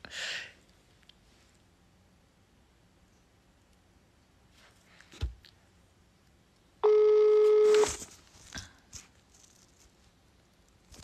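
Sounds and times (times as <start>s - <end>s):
telephone ringback beep: 6.8s - 8.0s.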